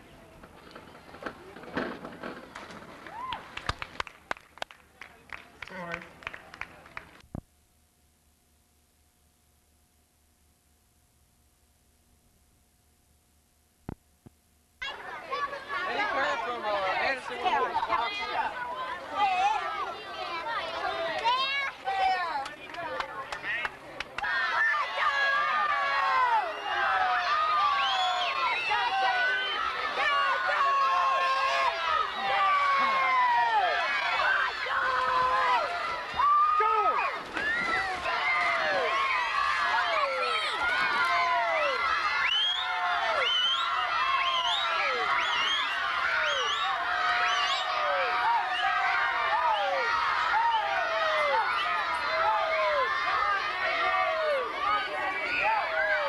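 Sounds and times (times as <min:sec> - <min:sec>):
crowd babble: 0:00.0 - 0:04.0, 0:14.8 - 0:56.0.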